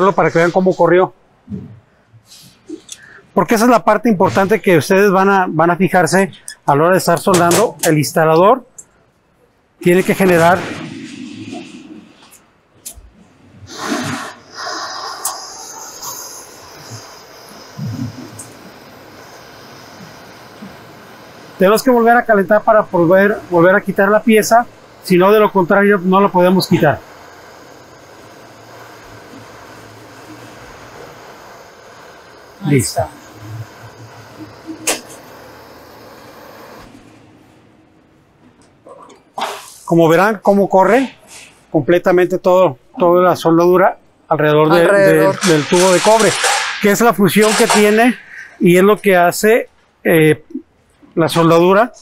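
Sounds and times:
gas torch hissing: 0.0 - 1.5, 2.1 - 7.9, 9.8 - 38.3, 39.4 - 43.6, 44.4 - 50.2
torch igniter click: 13.8 - 36.9
sharp metallic clank: 45.2 - 48.2.

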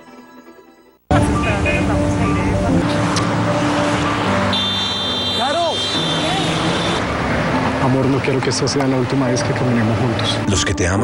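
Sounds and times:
road traffic: 1.1 - 10.6.

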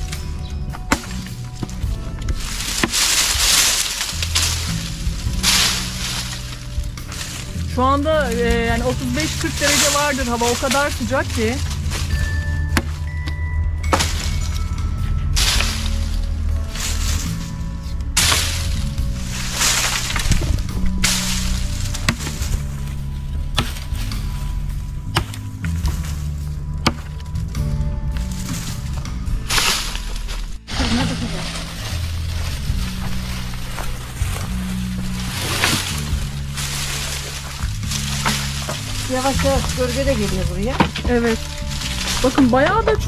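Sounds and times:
background music with bass: 0.0 - 43.0
hatchet chopping branches: 0.0 - 43.0.

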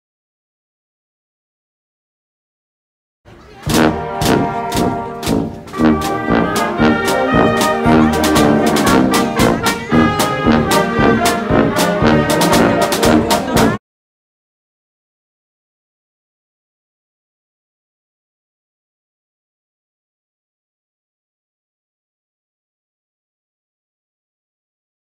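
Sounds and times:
brass and saxophones: 3.3 - 13.8
marching drum beat: 3.7 - 13.8.

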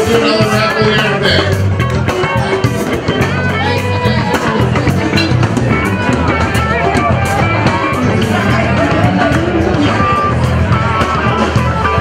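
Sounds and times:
drum kit steady beat: 0.0 - 12.0
rock band playing: 0.0 - 12.0.

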